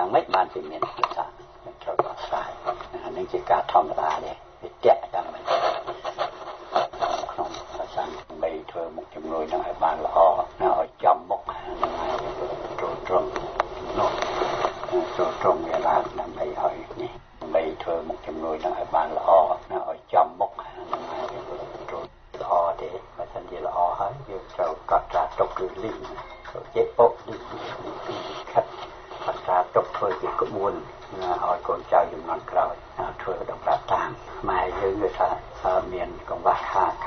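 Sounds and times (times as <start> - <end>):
radio news speech: 0.0 - 37.0.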